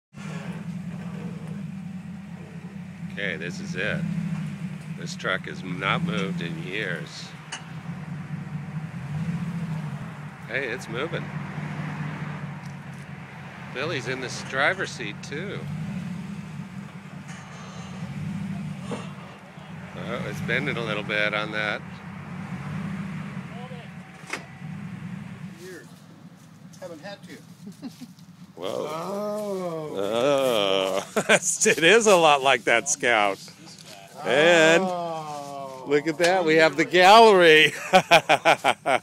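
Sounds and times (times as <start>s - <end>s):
vehicle engine running: 0.1s - 39.0s.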